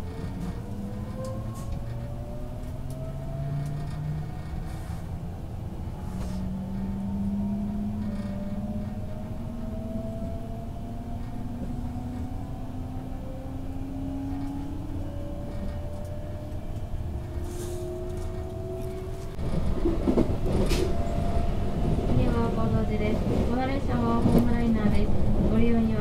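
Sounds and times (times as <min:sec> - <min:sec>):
train traction motor whine: 0:00.0 - 0:26.0
wheels rumbling on rails: 0:00.0 - 0:26.0.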